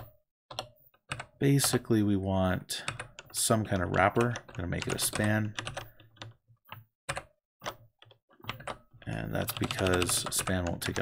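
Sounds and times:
keyboard keystrokes: 2.8 - 11.0.

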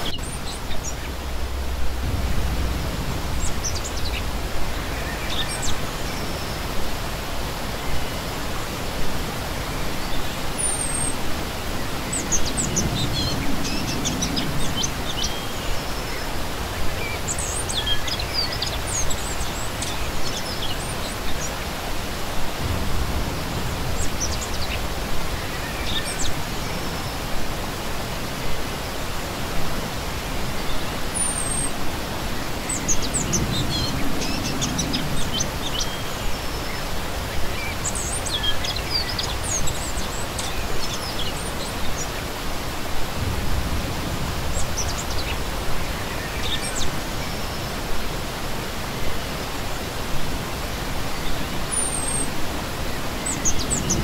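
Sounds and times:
songbirds chirping: 0.0 - 54.0
stream rushing over stones: 0.0 - 54.0.

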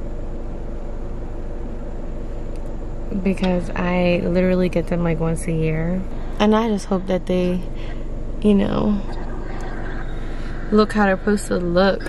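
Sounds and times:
car cabin engine hum: 0.0 - 12.0
car fan noise: 0.0 - 12.0.

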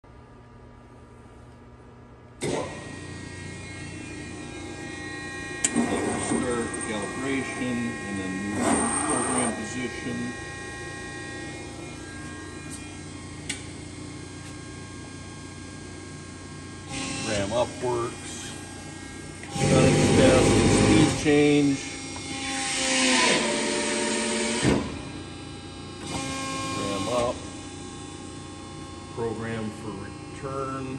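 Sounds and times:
hydraulic pump motor humming: 2.4 - 30.9.

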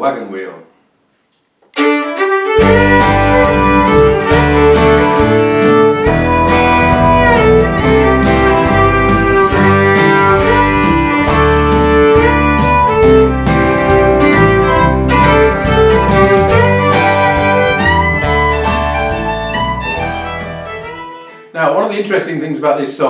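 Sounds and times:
fiddle playing a melody: 1.7 - 21.6
guitar and bass backing: 2.5 - 21.2.

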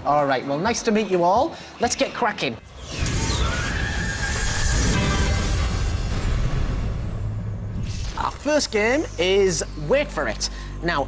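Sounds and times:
whooshing sci-fi effects: 2.6 - 9.2.

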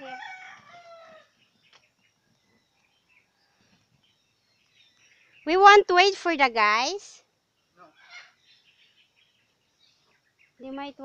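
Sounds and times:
faint bird chirps: 0.7 - 6.2, 7.4 - 11.0.

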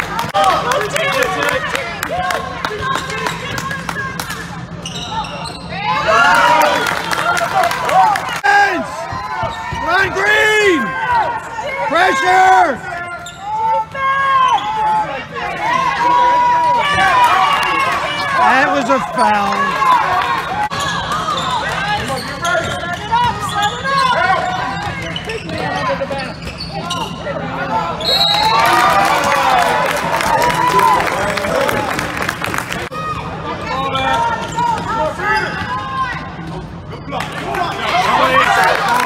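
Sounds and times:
sneakers squeaking on court: 4.8 - 5.7, 20.7 - 27.3.

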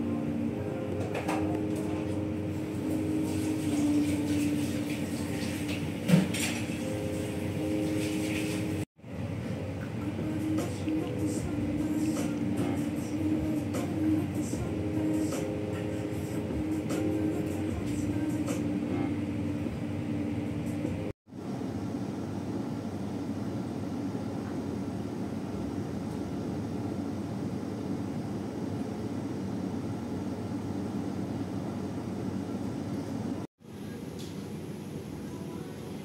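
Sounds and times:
low room hum and rumble: 0.0 - 36.0.

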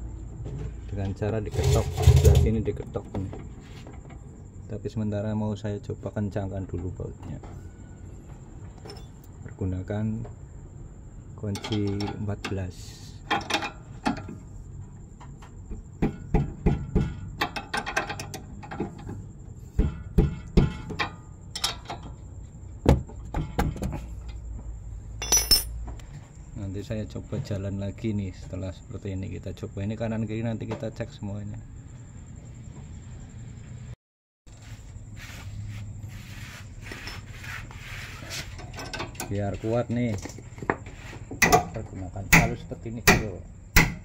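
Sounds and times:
wrench scraping and handling: 25.2 - 26.1, 36.3 - 41.6.

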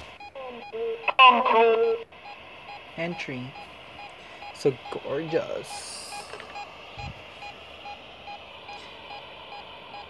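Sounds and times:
radio static: 0.0 - 10.0.

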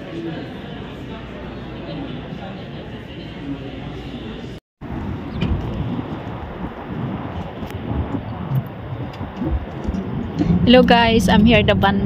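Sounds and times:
wind rumbling on microphone: 4.8 - 12.0.

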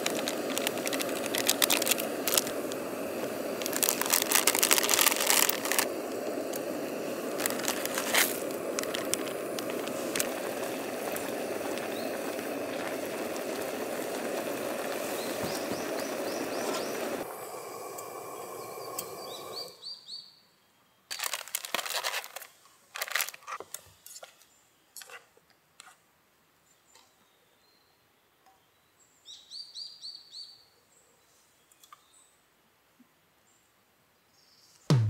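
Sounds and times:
plastic wrapper crinkling: 0.0 - 11.9, 21.1 - 23.7
water boiling in a pot: 0.0 - 19.8
bird chirps: 18.4 - 21.2.

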